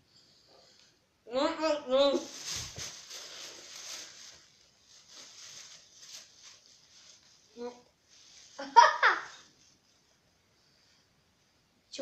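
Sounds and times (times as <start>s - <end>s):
plastic bag rustling: 2.0s - 10.2s.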